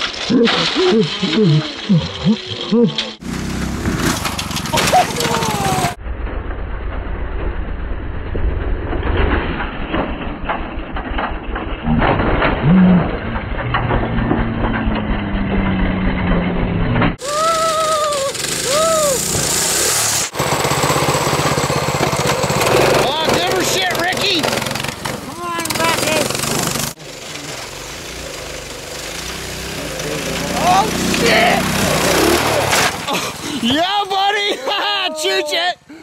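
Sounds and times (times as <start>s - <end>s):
small cart motor running: 0.0s - 6.0s, 12.6s - 33.7s
small engine humming: 0.0s - 6.0s, 17.2s - 33.6s
wheels crunching on snow: 0.0s - 6.0s, 8.8s - 34.6s.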